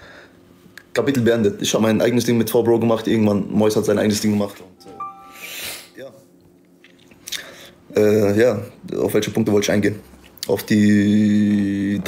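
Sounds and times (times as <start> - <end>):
short hissy breath: 5.3 - 6.0.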